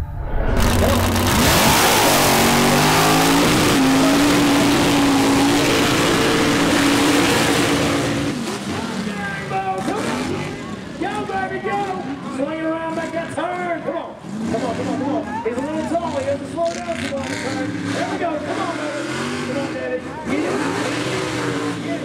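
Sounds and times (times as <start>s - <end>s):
truck engine at full throttle: 0.0s - 22.0s.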